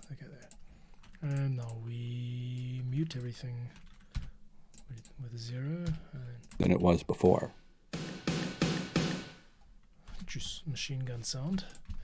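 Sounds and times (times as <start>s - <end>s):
reverb-drenched snare drum hits: 8.0s - 9.5s.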